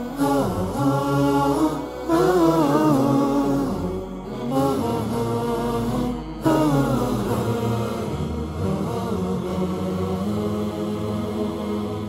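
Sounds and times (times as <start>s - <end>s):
vocal chant with long wavering notes: 0.0s - 12.0s.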